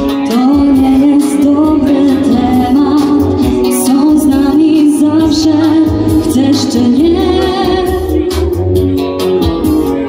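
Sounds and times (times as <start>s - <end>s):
woman singing into a microphone: 0.0s - 9.0s
backing music: 0.0s - 10.0s.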